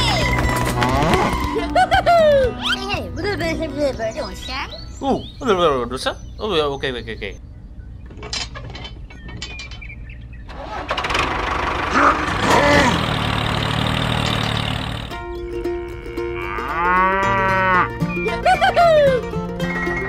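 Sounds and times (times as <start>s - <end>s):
loud engine-like rushing noise: 10.5s - 15.2s
cow mooing: 15.8s - 18.0s.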